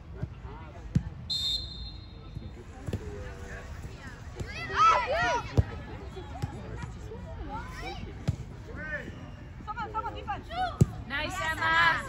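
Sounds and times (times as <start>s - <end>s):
soccer ball kick thud: 2.7s - 3.3s.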